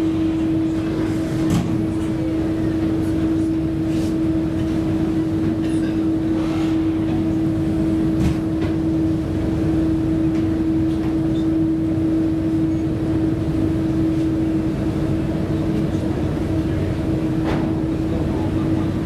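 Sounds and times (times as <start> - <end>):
constant humming tone: 0.0 - 19.0
ship engines rumbling: 0.0 - 19.0.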